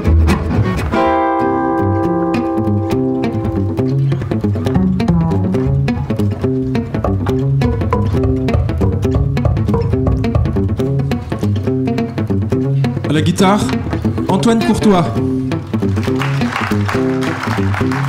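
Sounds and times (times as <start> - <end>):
plucked double bass walking line: 0.0 - 16.1
acoustic guitars strumming: 0.0 - 17.2.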